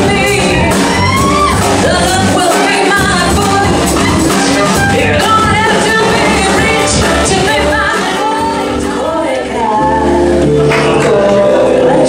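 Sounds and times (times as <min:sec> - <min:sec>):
live jazz band playing: 0:00.0 - 0:12.0.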